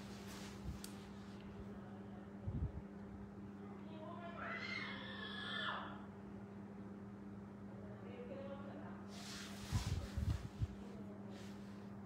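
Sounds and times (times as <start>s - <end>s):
steady low hum: 0.0s - 4.4s, 5.7s - 12.0s.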